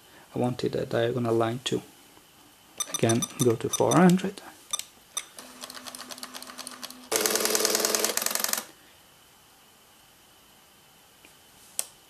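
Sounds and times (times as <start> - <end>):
plotter rapid ticking: 2.8 - 4.1.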